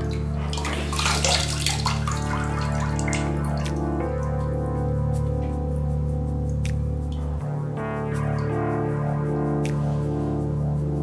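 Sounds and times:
tap water running and splashing: 0:00.0 - 0:04.3
background music: 0:00.0 - 0:11.0.

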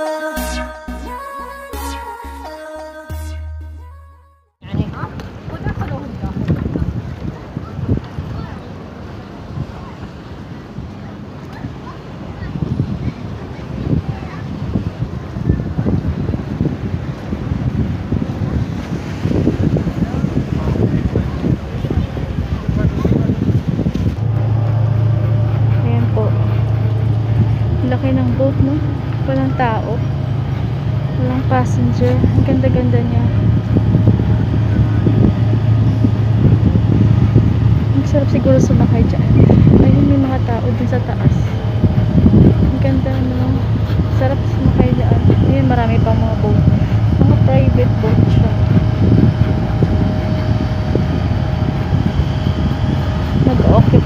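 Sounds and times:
low engine hum: 0:04.6 - 0:54.0
low outdoor rumble: 0:04.6 - 0:54.0
faint voices: 0:18.0 - 0:54.0.

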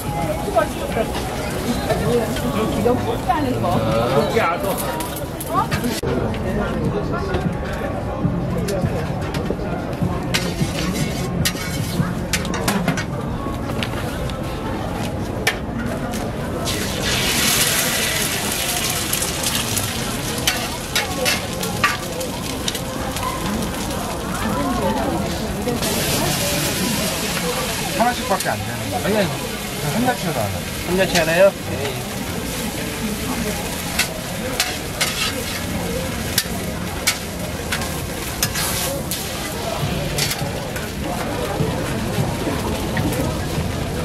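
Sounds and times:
flatbread sizzling on a griddle: 0:16.6 - 0:44.0
egg sizzling on a griddle: 0:16.7 - 0:24.0
metal tongs clicking on griddle: 0:34.0 - 0:35.6, 0:36.3 - 0:39.2, 0:40.2 - 0:40.4.

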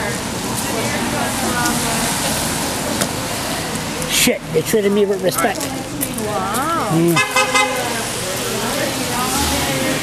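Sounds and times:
car tyres hissing on wet road: 0:00.0 - 0:04.4.

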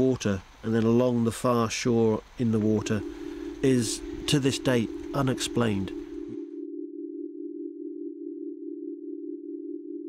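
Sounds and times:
low sustained drone: 0:02.9 - 0:10.0.

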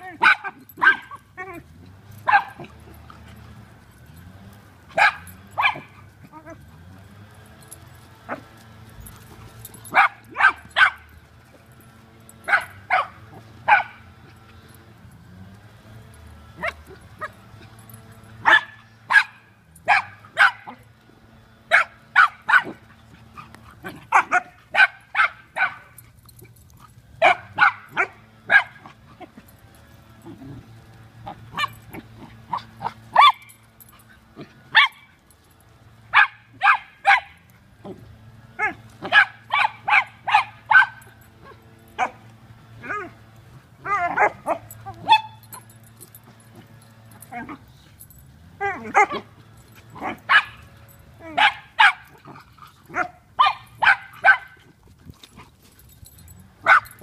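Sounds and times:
dogs barking in play: 0:00.0 - 0:57.0.

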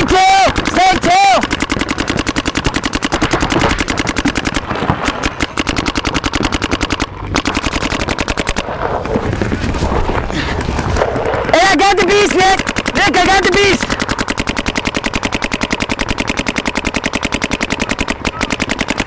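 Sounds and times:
person shouting: 0:00.0 - 0:01.4
paintball markers rapid fire: 0:00.0 - 0:19.0.

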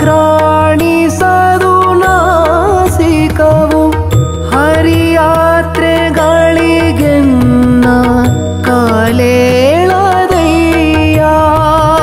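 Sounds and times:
man singing devotional song: 0:00.0 - 0:12.0
tabla strokes: 0:00.0 - 0:12.0.

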